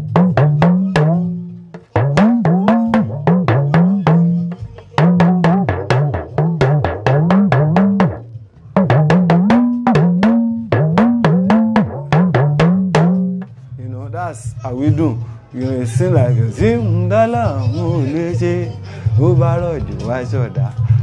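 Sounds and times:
talking drum pitch-bending strokes: 0.0 - 14.0.

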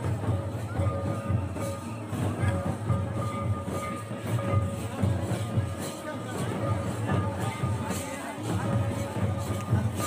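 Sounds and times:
drums beating steady rhythm: 0.0 - 10.0.

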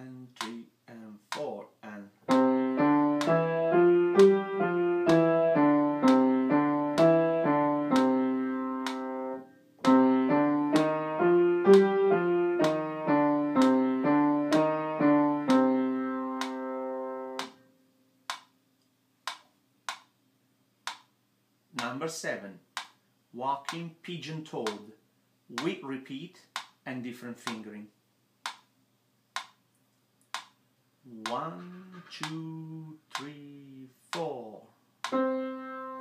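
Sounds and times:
piano finger exercise: 2.2 - 17.6, 31.1 - 36.0
sharp clicks: 8.8 - 9.1, 19.3 - 20.1, 32.0 - 32.5, 33.1 - 33.4.

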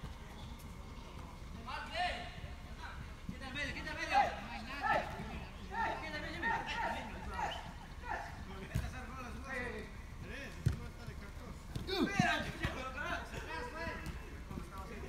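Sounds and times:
players calling out: 11.7 - 14.4.

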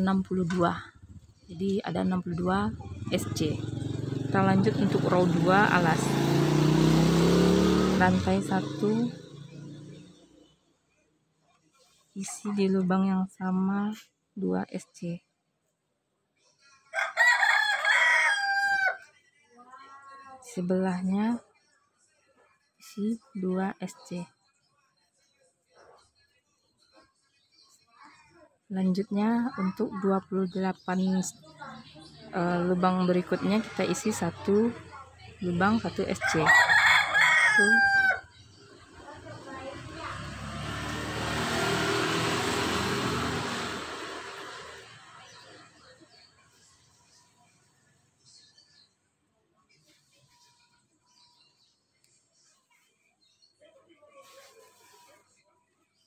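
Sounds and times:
motor vehicle passing by: 0.0 - 10.8, 29.6 - 48.6
rooster crowing: 16.9 - 19.1, 36.2 - 38.3.

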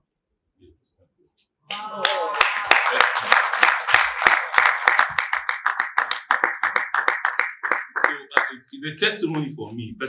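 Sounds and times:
hands clapping: 1.7 - 9.6.

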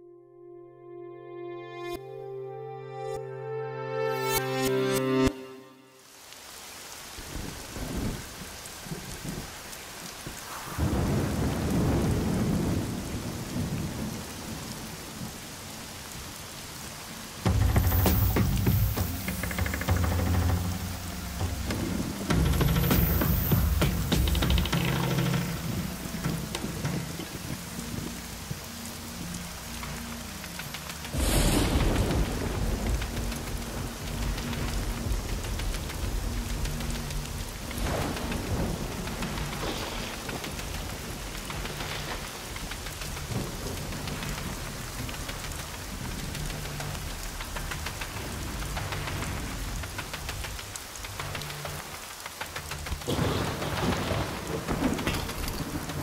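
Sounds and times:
heavy rain pouring: 4.1 - 56.0
rolling thunder: 10.2 - 15.5, 31.1 - 50.1, 53.0 - 56.0
loud thunderclap: 10.3 - 14.8, 31.1 - 36.8, 37.4 - 45.3, 53.0 - 56.0.

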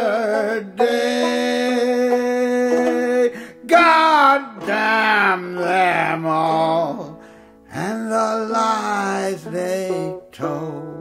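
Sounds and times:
banjo playing: 0.0 - 11.0
man singing folk song: 0.0 - 11.0.

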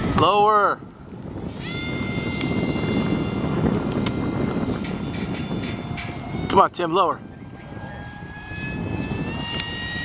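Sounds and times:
model plane motor whining: 1.1 - 10.0.

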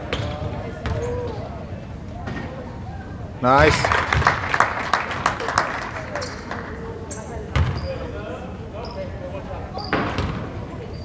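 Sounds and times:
scattered hand claps: 3.6 - 6.8.

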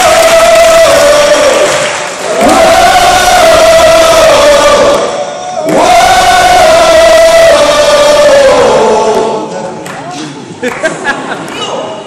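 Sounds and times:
hall and crowd noise: 0.0 - 12.0.

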